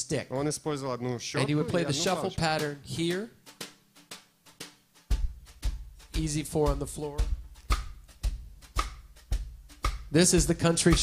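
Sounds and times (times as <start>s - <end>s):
bass drum beats: 5.1s - 11.0s.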